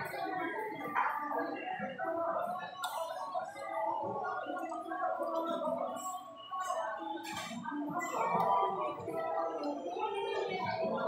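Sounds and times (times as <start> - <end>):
background chatter of many voices: 0.0 - 11.0.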